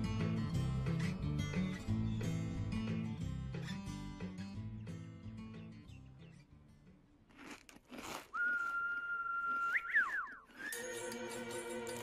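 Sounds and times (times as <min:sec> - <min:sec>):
person whistling: 0:08.3 - 0:11.0.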